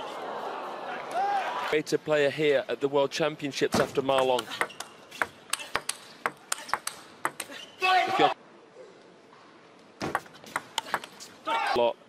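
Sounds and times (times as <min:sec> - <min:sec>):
loud shout: 0:00.9 - 0:01.8, 0:11.4 - 0:11.8
table tennis ball clicking: 0:04.4 - 0:07.5.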